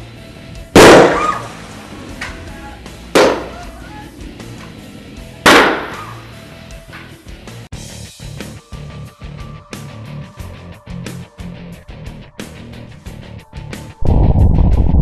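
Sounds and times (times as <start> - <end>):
rock guitar music: 0.0 - 13.9.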